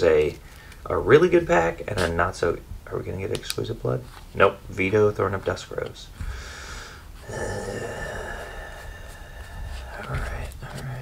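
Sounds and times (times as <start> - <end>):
man groaning in disappointment: 7.2 - 8.8.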